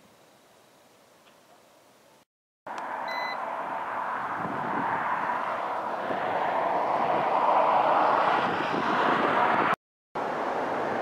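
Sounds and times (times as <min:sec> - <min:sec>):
traffic rushing: 0:02.7 - 0:11.0
short electronic beep: 0:03.1 - 0:03.4
wind noise: 0:03.6 - 0:09.8.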